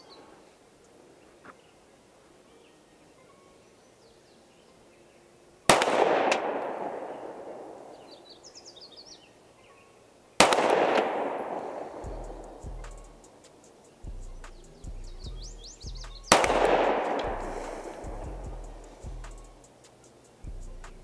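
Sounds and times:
pistol shots with rolling echo: 5.7s - 8.3s, 10.4s - 13.4s, 16.3s - 18.2s.

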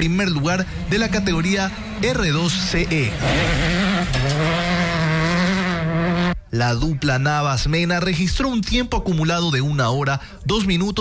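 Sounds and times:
rally car engine at high revs: 0.0s - 6.4s.

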